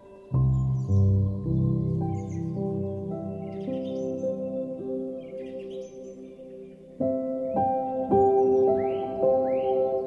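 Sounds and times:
birds chirping: 0.0 - 10.0
slow solo piano music: 0.0 - 10.0.

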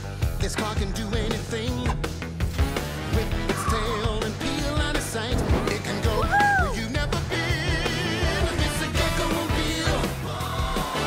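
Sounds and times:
upbeat rock song: 0.0 - 11.0
person singing: 3.1 - 11.0.

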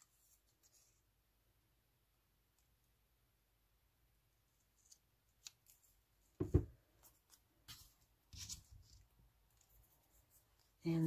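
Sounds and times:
dull knocks on table: 6.4 - 6.7.

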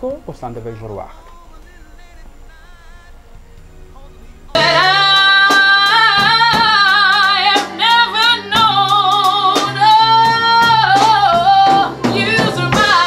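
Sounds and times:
instrumental backing with beat: 3.4 - 13.0.

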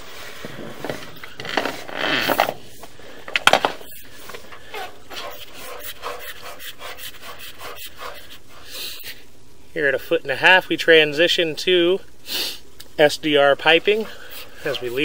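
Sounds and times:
cable scraping in a pipe: 4.3 - 8.4.

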